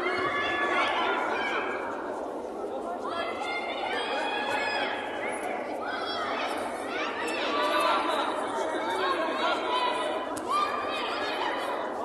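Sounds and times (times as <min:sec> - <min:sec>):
spectators calling out and chattering: 0:00.0 - 0:12.0.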